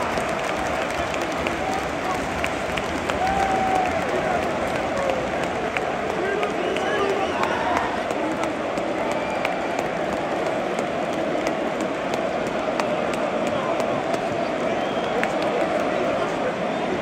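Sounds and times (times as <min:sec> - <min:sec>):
stadium crowd applauding and shouting: 0:00.0 - 0:17.0.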